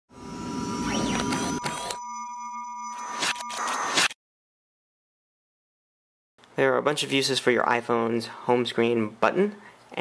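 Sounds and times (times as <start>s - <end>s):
electronic sine-tone beeps and chirps: 0.1s - 4.2s.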